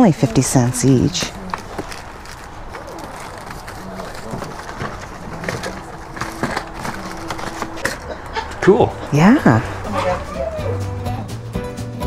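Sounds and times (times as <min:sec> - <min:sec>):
paper and plastic rustling: 0:00.2 - 0:08.6.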